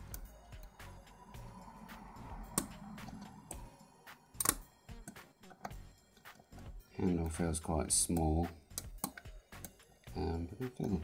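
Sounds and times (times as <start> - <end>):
lock pick clicking and scraping: 4.4 - 6.4.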